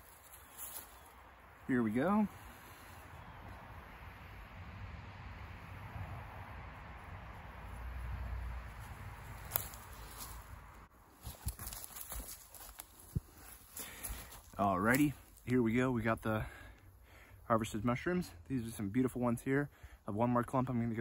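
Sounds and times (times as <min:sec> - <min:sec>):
handling rustle: 0:11.2 - 0:15.4.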